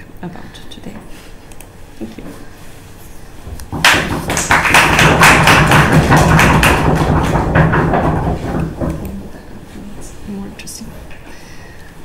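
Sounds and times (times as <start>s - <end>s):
audience applauding: 3.8s - 7.6s.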